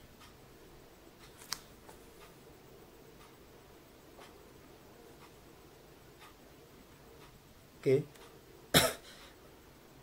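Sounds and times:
man coughing: 8.8s - 9.2s.

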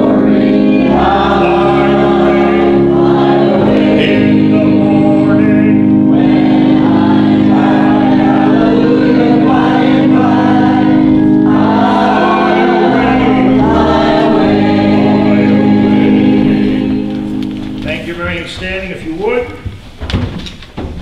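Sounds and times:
congregation singing a hymn: 0.0s - 19.3s
sustained accompaniment chords: 0.0s - 19.4s.

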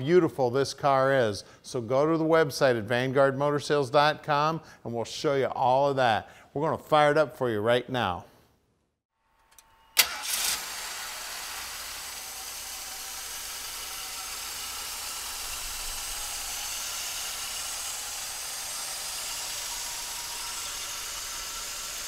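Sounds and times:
car engine idling: 10.0s - 22.0s.

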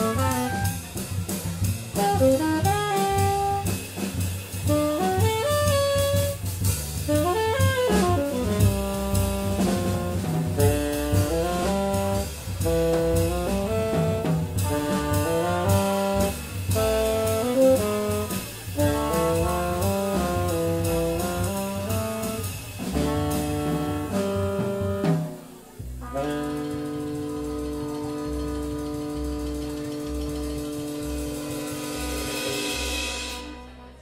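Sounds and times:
tenor saxophone: 0.0s - 1.2s, 1.9s - 32.0s
bass: 0.0s - 34.0s
drums: 0.0s - 34.0s
trumpet: 0.0s - 34.0s.

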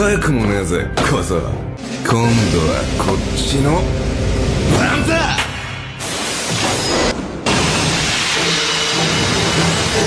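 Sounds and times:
background music with pulsing low note: 0.0s - 6.1s.

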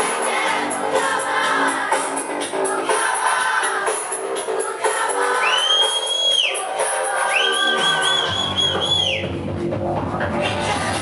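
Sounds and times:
electronic dance music: 0.0s - 11.0s
deep bass line: 8.0s - 11.0s.

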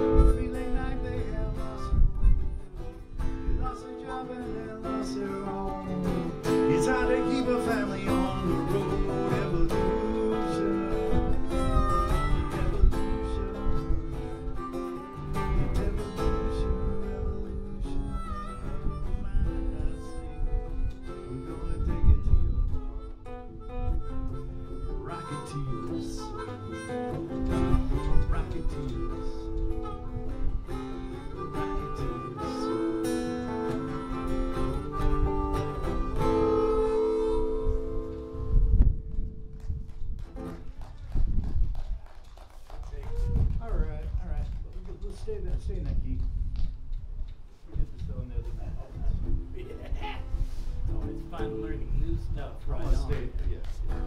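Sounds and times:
harmonica playing lead: 0.0s - 39.3s
acoustic guitar strumming: 0.0s - 40.9s, 49.2s - 54.0s.

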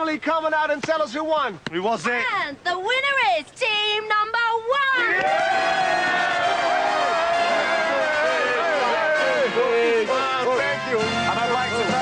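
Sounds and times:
voices shouting and cheering: 4.5s - 12.0s
music playing: 5.8s - 12.0s.

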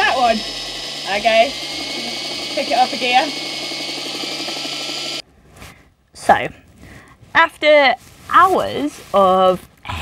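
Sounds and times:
electric drill motor humming: 0.0s - 5.2s.

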